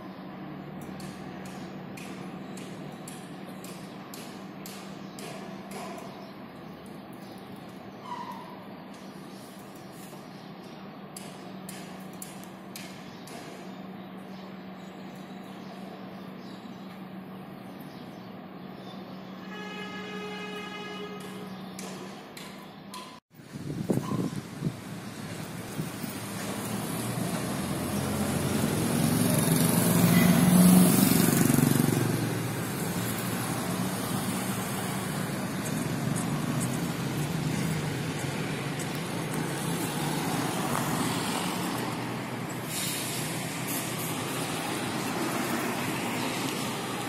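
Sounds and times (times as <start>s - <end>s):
construction site noise: 0.0s - 47.0s
heavy vehicle engine: 24.1s - 47.0s.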